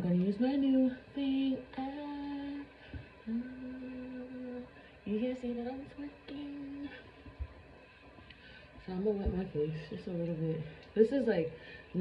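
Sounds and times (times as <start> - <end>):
woman humming: 1.3 - 7.0.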